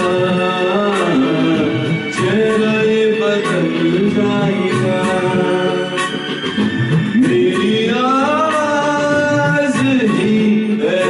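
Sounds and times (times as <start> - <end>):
karaoke backing track: 0.0 - 11.0.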